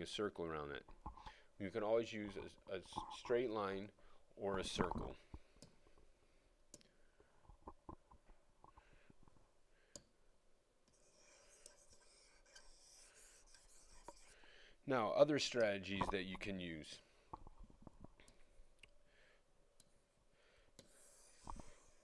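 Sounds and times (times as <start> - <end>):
stylus scratching rub: 10.9 - 14.4, 20.8 - 22.0.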